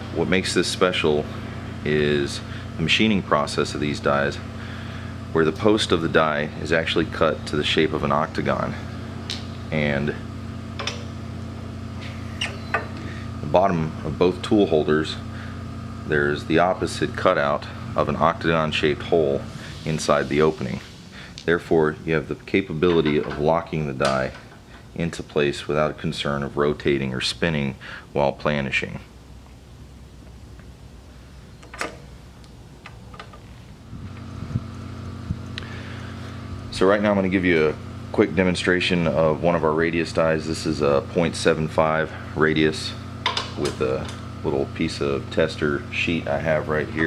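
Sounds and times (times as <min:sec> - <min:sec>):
machinery humming: 0:00.0 - 0:47.0.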